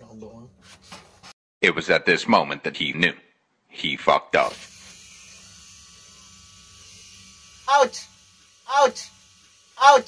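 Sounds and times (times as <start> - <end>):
tattoo machine buzzing: 4.4 - 10.0.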